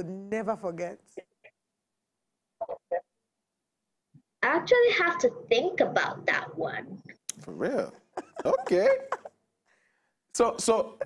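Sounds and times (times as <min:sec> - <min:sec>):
girl chuckling: 0:08.1 - 0:09.4.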